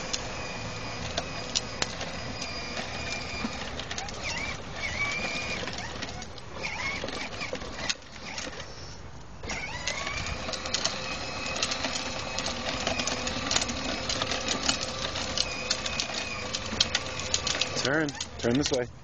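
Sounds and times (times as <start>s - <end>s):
plastic wheels rattling on concrete: 0.0s - 8.8s, 9.4s - 19.0s
toy electric motor whirring: 0.0s - 18.9s.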